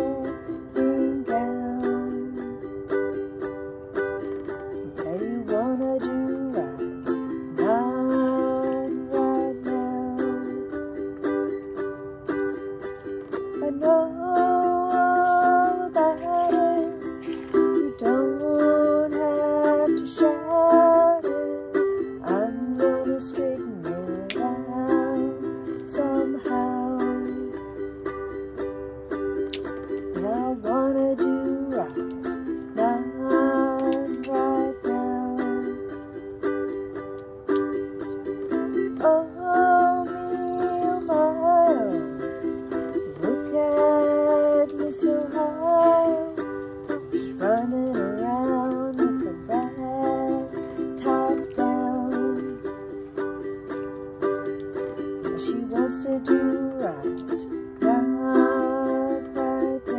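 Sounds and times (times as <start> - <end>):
person singing wordless melody: 0.0 - 59.9
ukulele strumming chords: 0.0 - 59.9.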